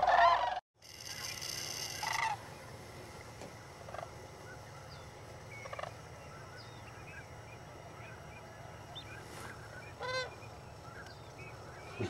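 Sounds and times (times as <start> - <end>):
distant crane calls: 0.0 - 12.0
louder nearer crane call: 3.8 - 12.0.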